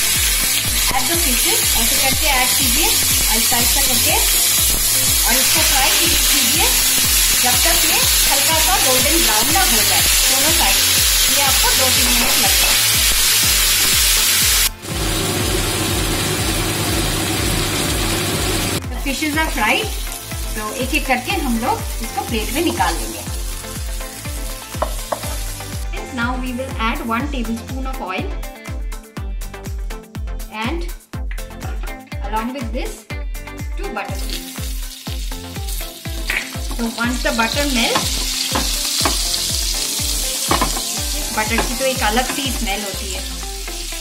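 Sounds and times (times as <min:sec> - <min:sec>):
fish sizzling in hot oil: 0:00.0 - 0:25.8, 0:34.2 - 0:44.0
music with thumping beat: 0:00.0 - 0:44.0.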